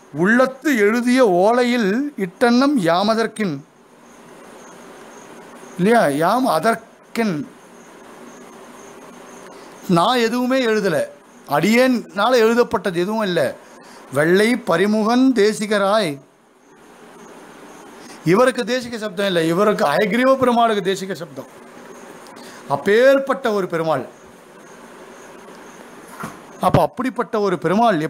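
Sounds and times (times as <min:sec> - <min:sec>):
steady hiss: 0:00.0 - 0:28.0
man speaking: 0:00.2 - 0:03.7, 0:05.8 - 0:07.5, 0:09.9 - 0:16.3, 0:18.2 - 0:21.6, 0:22.7 - 0:24.1, 0:26.6 - 0:28.0.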